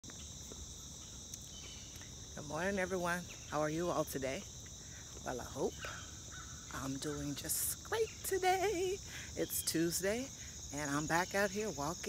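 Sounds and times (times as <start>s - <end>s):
insects chorus: 0.0s - 12.0s.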